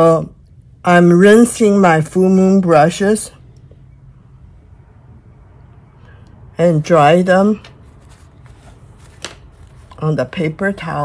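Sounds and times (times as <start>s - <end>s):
paper towel rustling: 7.3s - 11.0s.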